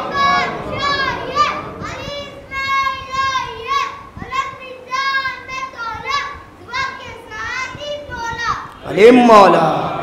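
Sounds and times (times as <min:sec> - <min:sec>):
congregation chanting together: 0:00.0 - 0:02.3
children's voices: 0:00.0 - 0:08.9.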